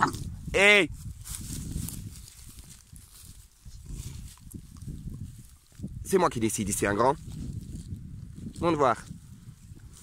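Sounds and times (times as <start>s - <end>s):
dog rustling in dry grass: 0.9s - 6.0s, 6.6s - 10.0s.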